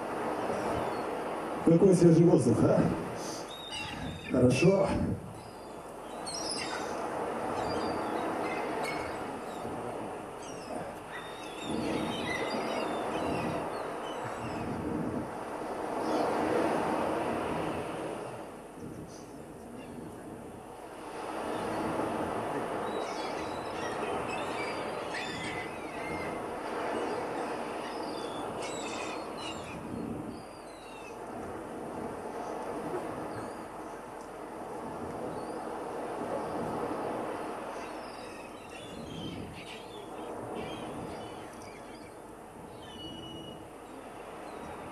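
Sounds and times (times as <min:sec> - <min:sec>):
birds chirping: 0:00.6 - 0:16.5, 0:18.7 - 0:31.3, 0:35.2 - 0:44.9.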